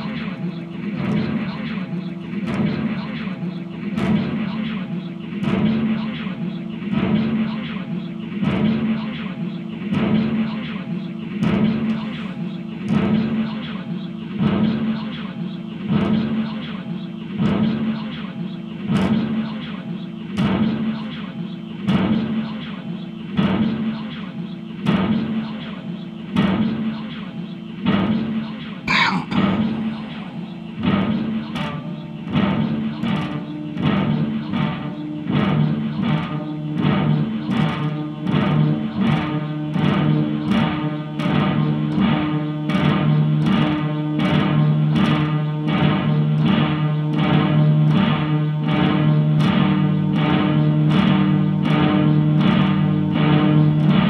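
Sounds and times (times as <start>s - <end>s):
low noise drone: 28.8s - 40.3s
steady low drone: 28.9s - 31.6s.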